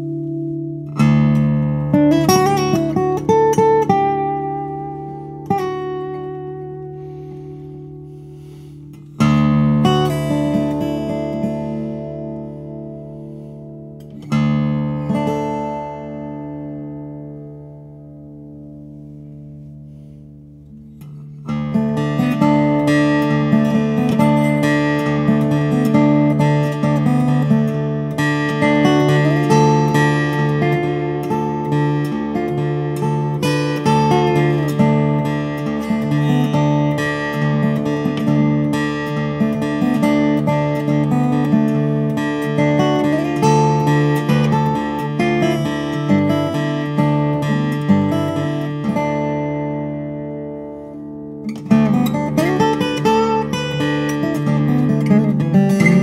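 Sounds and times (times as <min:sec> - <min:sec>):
acoustic guitar chord ringing: 0:00.0 - 0:56.0
fingerpicked acoustic guitar: 0:00.0 - 0:56.0.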